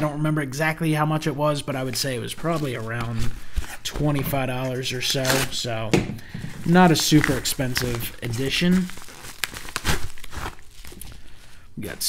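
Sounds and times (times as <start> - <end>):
envelopes and plastic rustling: 1.8 - 12.0.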